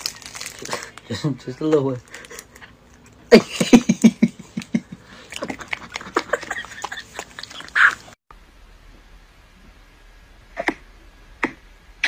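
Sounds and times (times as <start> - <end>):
dog chewing loudly: 5.2 - 8.1.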